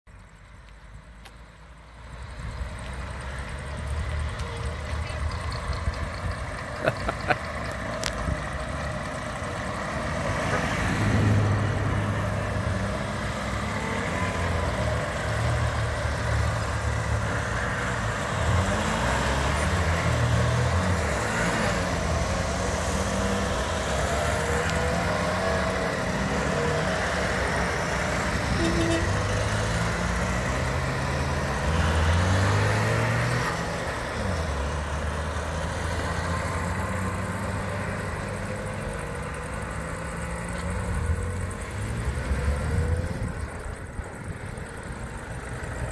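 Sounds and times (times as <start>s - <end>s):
small car engines passing: 0.2s - 45.9s.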